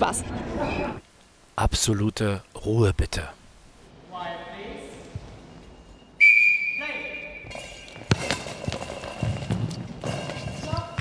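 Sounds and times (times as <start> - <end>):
referee's whistle blast: 6.2 - 7.6.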